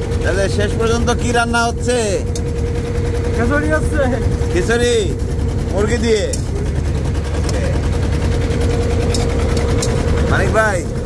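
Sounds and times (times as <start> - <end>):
boat engine droning: 0.0 - 11.0
steady hum: 0.0 - 11.0.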